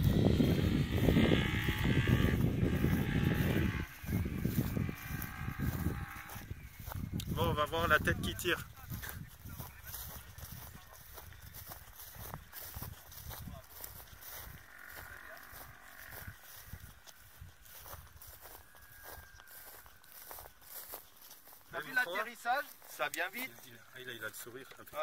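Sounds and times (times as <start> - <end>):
wind on microphone: 0.0 - 20.9.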